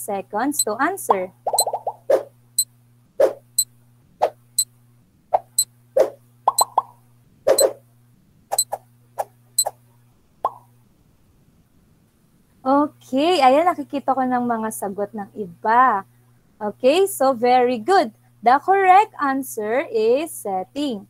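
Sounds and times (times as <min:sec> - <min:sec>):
low steady hum: 0:00.0 - 0:21.0.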